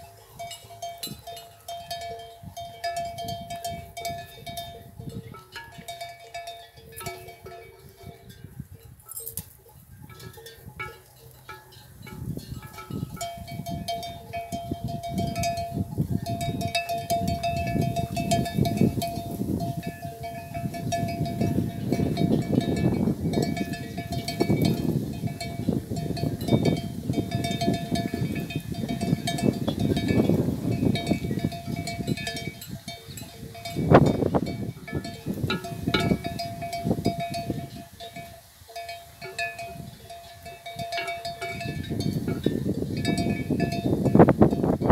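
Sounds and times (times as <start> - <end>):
close rustling and crunching: 0.0 - 44.6
animal bells clanking: 0.0 - 44.9.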